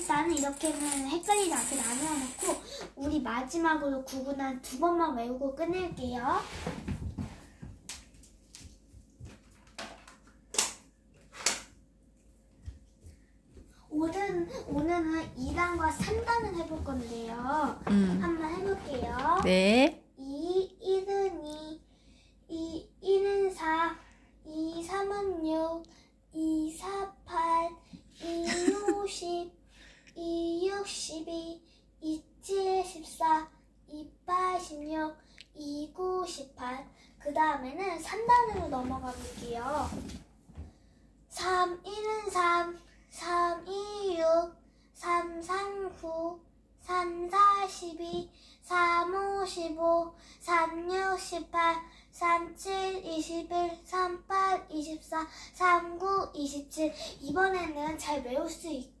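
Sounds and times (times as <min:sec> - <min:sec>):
girl chanting in sing-song voice: 0:14.0 - 0:21.8.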